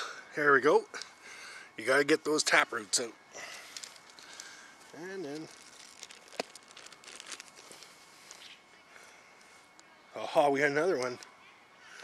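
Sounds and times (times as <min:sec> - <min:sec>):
hands digging in soil: 0:03.6 - 0:08.5.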